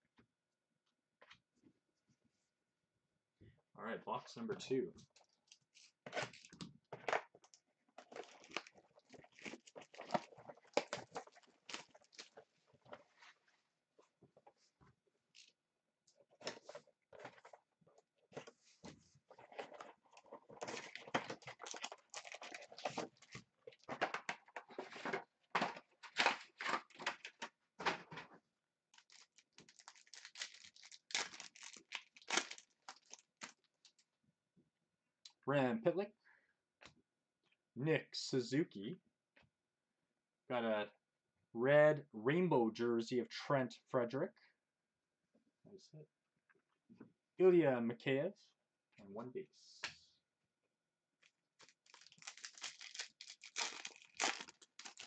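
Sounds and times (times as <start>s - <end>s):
foil packs tearing: 20.6s - 24.2s, 29.0s - 33.5s, 51.6s - 55.0s
plastic shrink wrap peeling: 20.6s - 24.5s, 29.0s - 34.0s, 51.6s - 55.0s.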